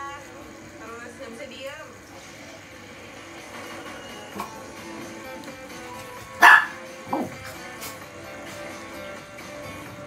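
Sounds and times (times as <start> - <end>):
guitar music: 3.0 - 10.0
dog yelping: 6.4 - 7.4
small dog barking: 6.4 - 7.4.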